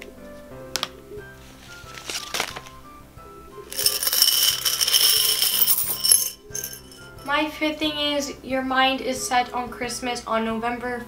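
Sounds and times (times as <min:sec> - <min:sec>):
background music: 0:00.0 - 0:11.0
coins jingling: 0:03.7 - 0:07.3.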